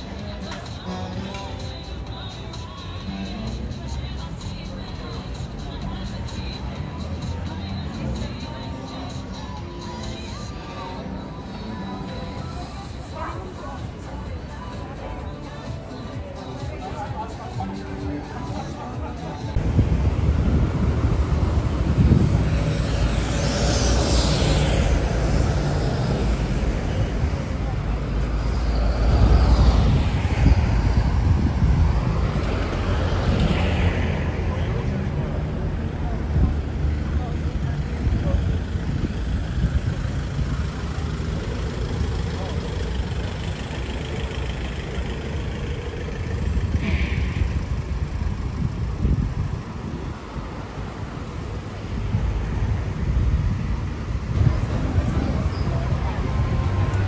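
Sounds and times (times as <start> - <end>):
people talking: 0.0 - 21.0, 21.8 - 53.3, 54.3 - 57.0
steady low rumble: 19.4 - 33.3.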